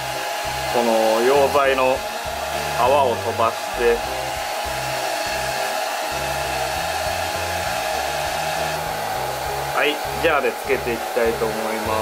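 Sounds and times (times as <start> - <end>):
hair dryer running: 0.0 - 12.0.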